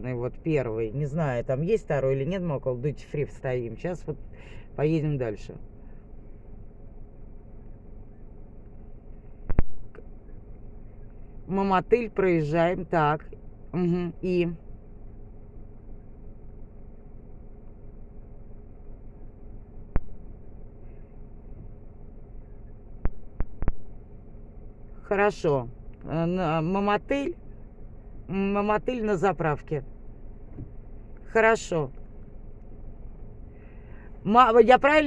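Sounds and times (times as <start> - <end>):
car cabin rumble: 29.4 - 33.4.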